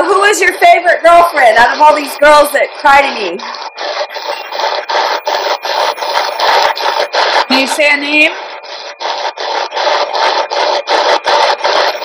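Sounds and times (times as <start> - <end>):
chopped radio static bursts: 0.0 - 12.0.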